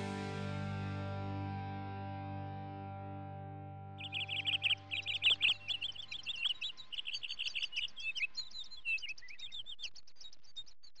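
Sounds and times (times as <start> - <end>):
held music chord: 0.0 - 6.5
birds chirping: 3.9 - 11.0.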